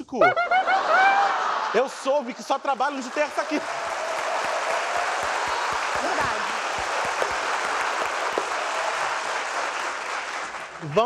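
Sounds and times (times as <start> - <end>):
audience applauding: 0.8 - 11.0.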